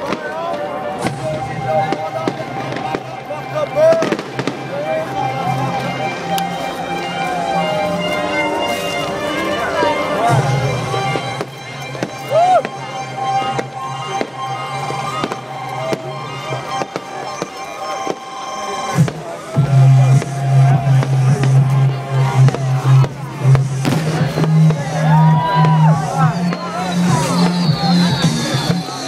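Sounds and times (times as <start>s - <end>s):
fireworks bursting and crackling: 0.0s - 5.7s, 10.5s - 29.0s
crowd voices: 0.0s - 29.0s
loud dance music with bass: 18.9s - 29.0s
sharp bang: 22.4s - 24.9s.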